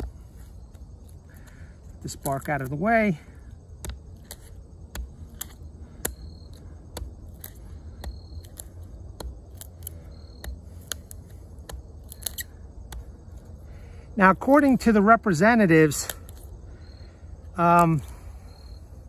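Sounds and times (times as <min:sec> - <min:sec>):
blade prying into wood: 0:03.7 - 0:13.4
wood clicking and cracking: 0:03.8 - 0:13.1.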